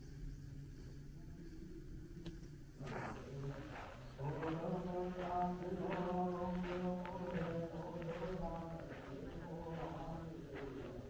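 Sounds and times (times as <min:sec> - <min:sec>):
man chanting held notes: 0:02.8 - 0:11.0
footsteps on gravel: 0:02.9 - 0:11.0.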